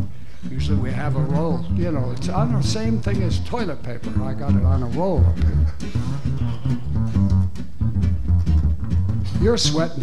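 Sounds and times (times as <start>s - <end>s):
double bass plucking: 0.0s - 10.0s
electric jazz guitar: 0.0s - 10.0s.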